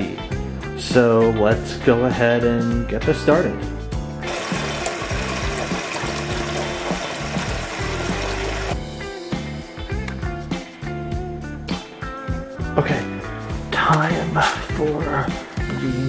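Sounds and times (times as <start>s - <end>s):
background music: 0.0s - 16.0s
tap water pouring into a pot: 4.2s - 8.8s.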